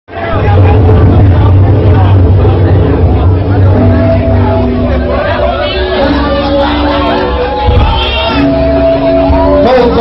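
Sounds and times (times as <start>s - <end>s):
loud low rumble: 0.1s - 6.0s.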